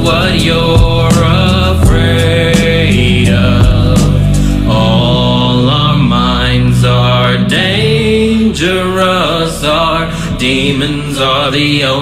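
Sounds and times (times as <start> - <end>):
chant-like singing: 0.0 - 12.0
sustained musical backing: 0.0 - 12.0.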